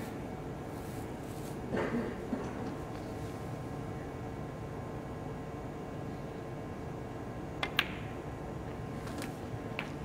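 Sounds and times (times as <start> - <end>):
sharp click of balls colliding: 7.6 - 8.1.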